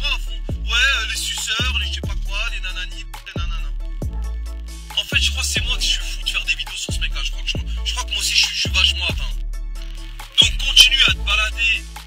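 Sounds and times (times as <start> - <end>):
fast hi-hats: 0.0 - 12.0
rapping over a beat: 0.0 - 12.0
deep bass hits: 1.6 - 2.4, 3.1 - 5.9.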